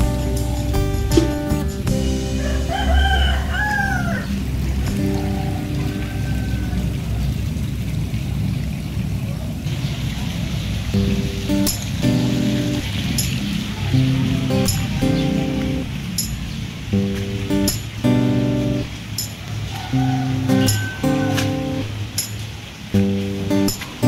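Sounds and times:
background music with held notes: 0:00.0 - 0:07.0, 0:11.0 - 0:24.0
rooster crowing: 0:02.3 - 0:07.3, 0:13.6 - 0:15.7, 0:19.7 - 0:22.0.

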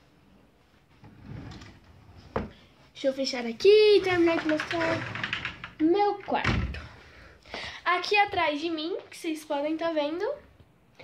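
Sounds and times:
drawer sliding: 0:01.0 - 0:02.6.

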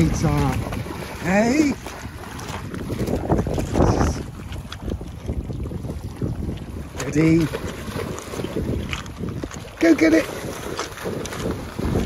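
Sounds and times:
dog splashing in water: 0:00.0 - 0:04.2, 0:06.9 - 0:12.0
water lapping at rocky shore: 0:00.0 - 0:12.0
wind buffeting microphone: 0:00.0 - 0:12.0.

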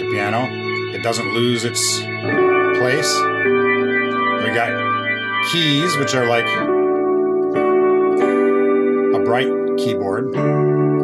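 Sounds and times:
synthesizer keyboard chords: 0:00.0 - 0:11.0.

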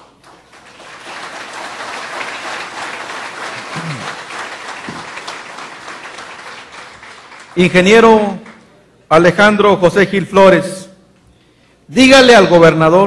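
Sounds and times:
audience applauding: 0:00.0 - 0:08.6.

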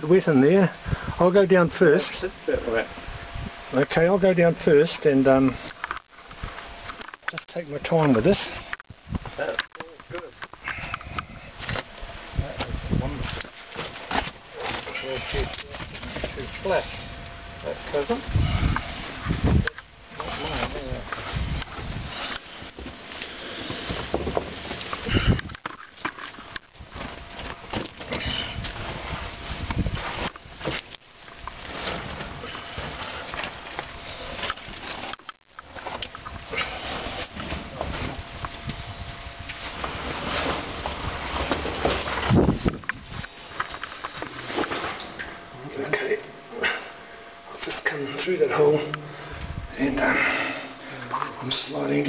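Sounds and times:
rustling and scraping over rock: 0:00.1 - 0:52.0.

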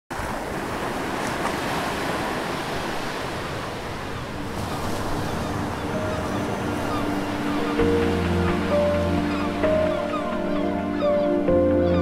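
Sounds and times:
waves breaking: 0:00.1 - 0:10.8.

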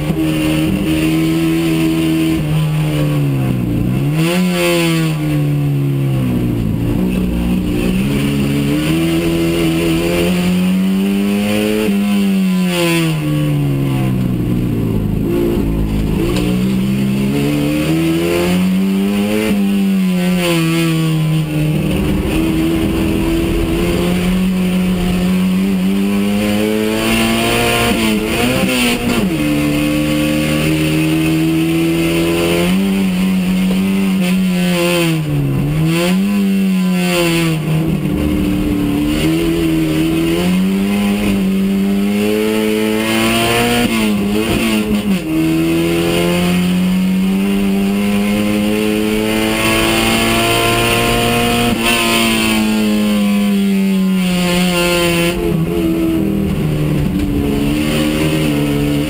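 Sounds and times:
race car engine: 0:00.0 - 0:59.0.

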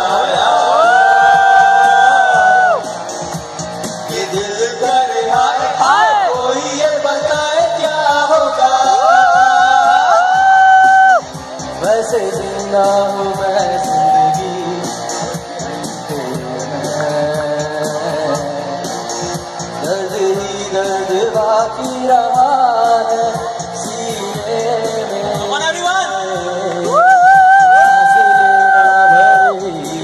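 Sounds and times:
man singing: 0:00.0 - 0:02.8, 0:04.0 - 0:10.6, 0:11.8 - 0:18.8, 0:19.8 - 0:30.0
crowd shouting: 0:00.0 - 0:06.8, 0:08.4 - 0:11.4, 0:26.9 - 0:29.6
guitars and keyboard: 0:00.0 - 0:30.0.

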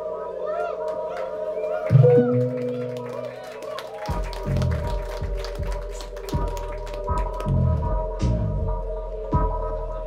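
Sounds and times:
synthesizer drone: 0:00.0 - 0:10.0
low bass pulses: 0:04.1 - 0:10.0.

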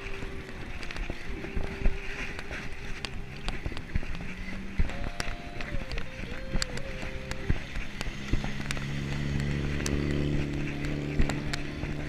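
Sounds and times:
bike rolling over road: 0:00.0 - 0:12.0
car engine hum: 0:00.0 - 0:12.0.

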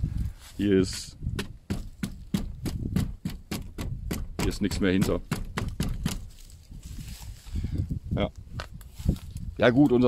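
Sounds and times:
footsteps shuffling in dry grass: 0:00.0 - 0:00.9, 0:06.2 - 0:10.0.

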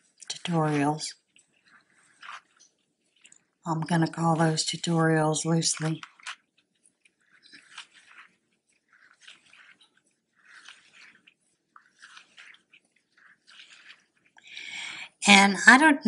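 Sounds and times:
yarn rustling on crochet hook: 0:00.0 - 0:15.2.

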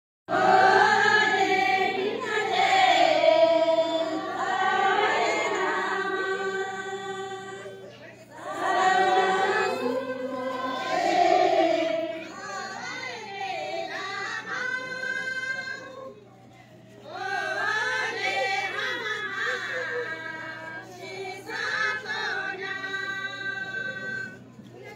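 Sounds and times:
group singing unaccompanied: 0:00.3 - 0:16.2, 0:17.1 - 0:24.4.

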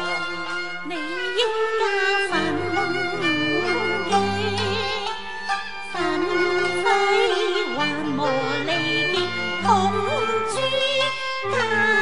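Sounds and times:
traditional instrumental accompaniment: 0:00.0 - 0:12.0
person singing wavering note: 0:02.3 - 0:05.1.

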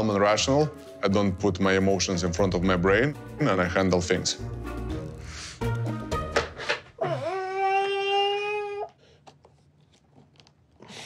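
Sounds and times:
baby crying: 0:07.0 - 0:09.0.

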